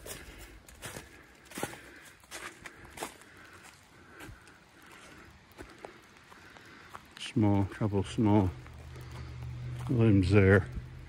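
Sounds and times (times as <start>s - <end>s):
footsteps on wet grass: 0.0s - 11.0s.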